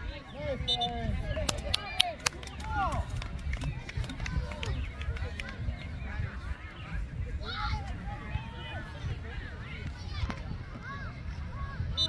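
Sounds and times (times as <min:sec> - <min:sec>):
low microphone rumble: 0:02.5 - 0:12.0.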